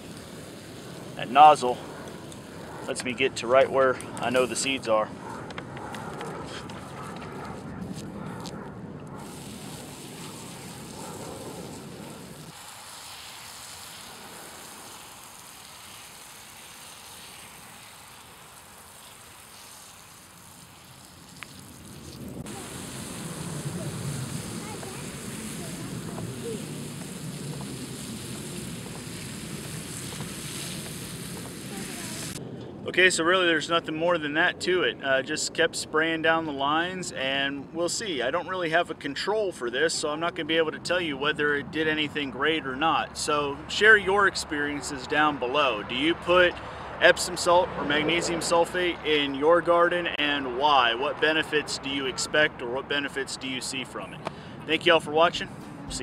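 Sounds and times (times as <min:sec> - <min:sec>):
sprayer wand spraying liquid: 0:09.2 - 0:32.4.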